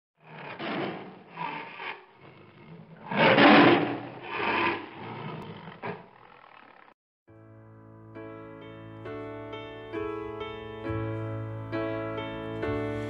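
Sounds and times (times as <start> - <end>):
tiger growling and roaring: 0.2 - 6.9.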